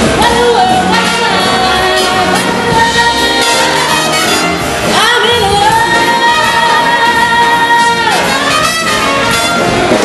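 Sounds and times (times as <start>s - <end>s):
woman singing: 0.0s - 9.3s
swing big band playing: 0.0s - 10.0s.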